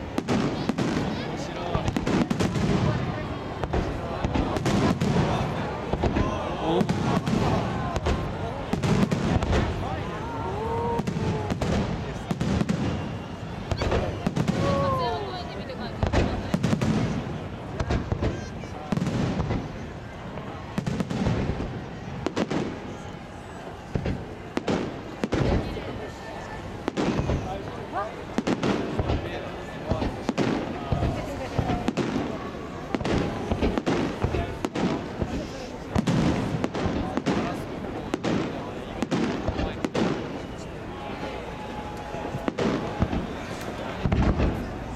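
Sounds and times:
crowd voices: 0:00.0 - 0:44.9
fireworks bursting: 0:00.0 - 0:44.9.

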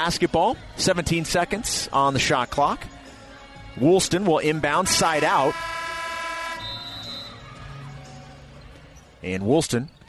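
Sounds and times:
arena horn note: 0:04.8 - 0:07.4.

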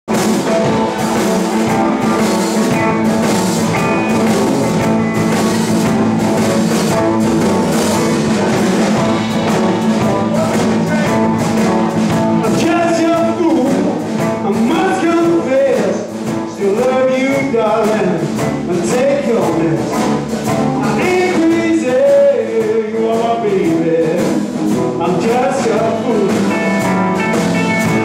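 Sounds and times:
blues band playing: 0:00.1 - 0:28.0
sliding guitar lead line: 0:00.1 - 0:28.0.

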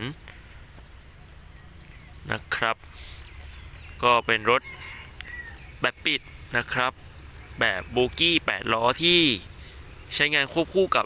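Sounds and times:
man speaking: 0:02.2 - 0:02.8, 0:07.6 - 0:09.5, 0:10.1 - 0:11.0.

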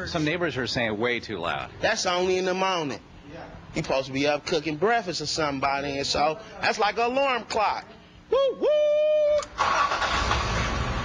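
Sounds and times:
car engine: 0:09.4 - 0:11.0.

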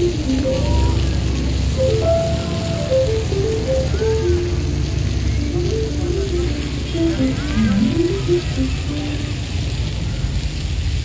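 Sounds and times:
simple melody of short notes: 0:00.0 - 0:09.2.

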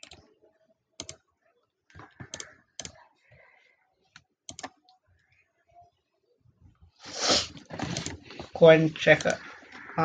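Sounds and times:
computer mouse clicks: 0:00.0 - 0:00.2, 0:01.0 - 0:01.2, 0:01.9 - 0:03.0, 0:04.5 - 0:05.3, 0:07.8 - 0:08.2.

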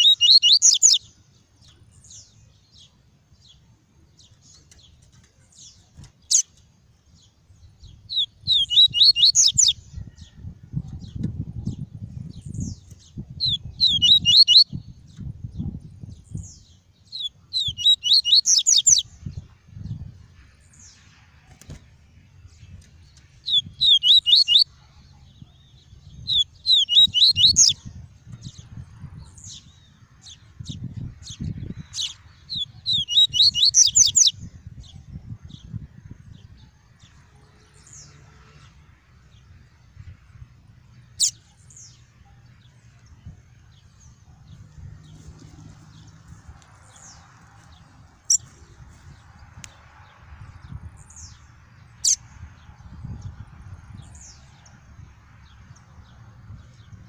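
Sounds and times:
bird singing high notes: 0:00.0 - 0:01.0, 0:13.4 - 0:14.7, 0:23.5 - 0:24.7.

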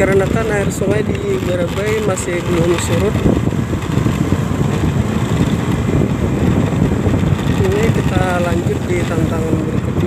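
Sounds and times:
motorcycle engine rumble: 0:00.0 - 0:10.0.

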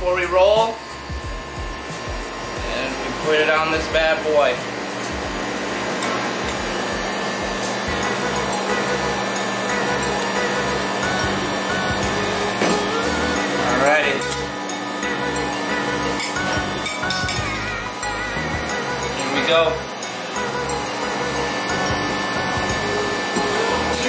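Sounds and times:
background music: 0:00.0 - 0:24.0
refrigeration unit humming: 0:00.0 - 0:24.0.

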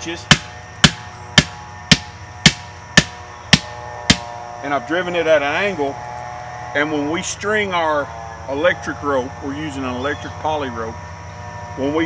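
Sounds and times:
hammer striking plastic post: 0:00.3 - 0:04.3.

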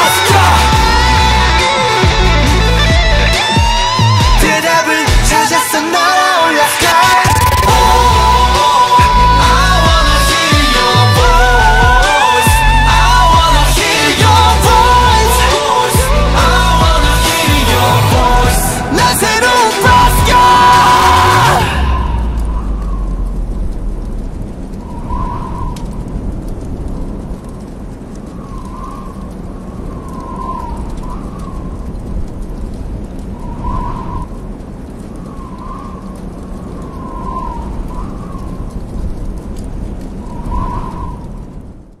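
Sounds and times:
low rumbling ambience: 0:00.0 - 0:05.6, 0:07.1 - 0:42.0.

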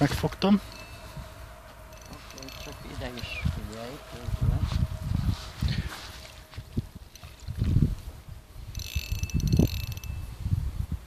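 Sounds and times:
fishing reel clicking rapidly: 0:00.7 - 0:01.1, 0:01.9 - 0:03.4, 0:07.0 - 0:07.6, 0:08.6 - 0:10.3.

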